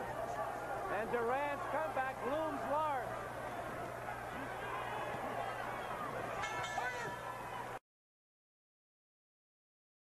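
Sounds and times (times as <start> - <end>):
arena crowd noise: 0.0 - 7.8
ring bell ringing: 6.4 - 7.2.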